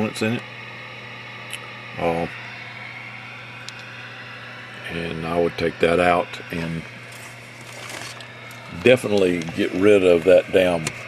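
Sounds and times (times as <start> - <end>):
man speaking: 4.8 - 6.9, 8.7 - 10.9.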